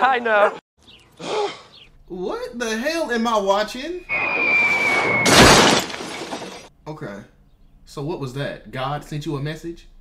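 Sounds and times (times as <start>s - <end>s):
falling whistle: 4.0s - 5.4s
glass and metal smash: 5.2s - 6.7s.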